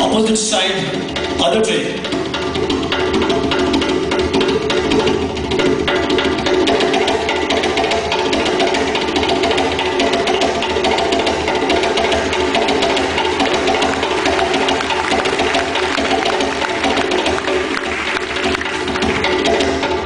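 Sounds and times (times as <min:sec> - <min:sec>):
djembe hand drumming: 0:00.9 - 0:20.0.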